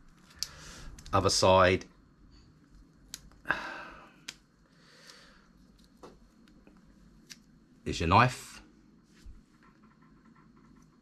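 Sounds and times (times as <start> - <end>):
person breathing: 0.3 - 1.1, 3.4 - 5.6.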